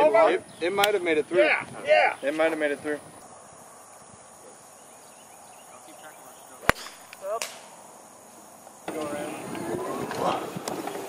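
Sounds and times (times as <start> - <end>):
high insect hum: 0.0 - 11.0
sharp click: 6.7 - 7.7.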